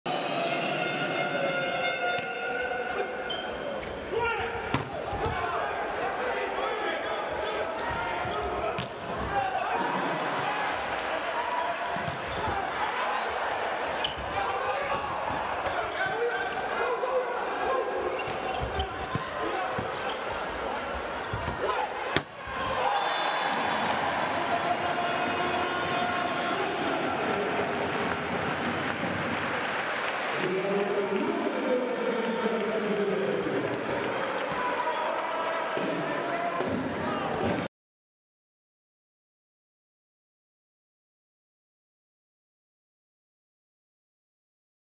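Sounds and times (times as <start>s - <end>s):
crowd voices and cheering: 0.1s - 37.7s
volleyball being hit: 4.7s - 5.4s, 21.3s - 22.4s.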